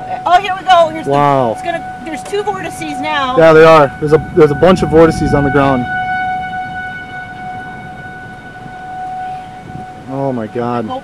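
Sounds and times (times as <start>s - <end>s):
low wind rumble: 0.0s - 11.0s
warning siren steady tone: 0.0s - 11.0s.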